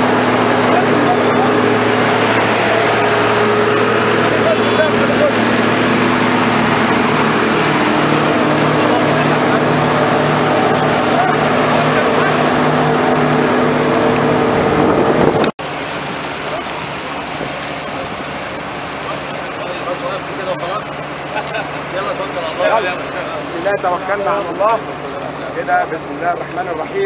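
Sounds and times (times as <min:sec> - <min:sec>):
combine harvester running: 0:00.0 - 0:27.0
outdoor noise: 0:00.0 - 0:27.0.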